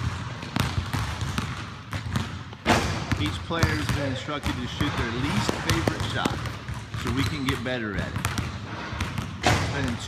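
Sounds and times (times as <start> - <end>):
basketballs bouncing on gym floor: 0.0 - 10.0.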